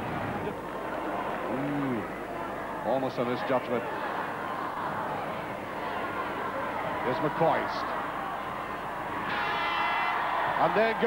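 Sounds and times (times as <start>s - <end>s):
crowd noise in a hall: 0.0s - 11.0s
buzzing horn: 9.2s - 10.4s.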